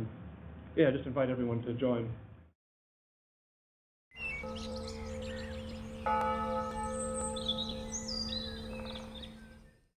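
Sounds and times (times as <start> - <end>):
birds chirping: 4.1 - 9.9
bell ringing: 4.4 - 9.3.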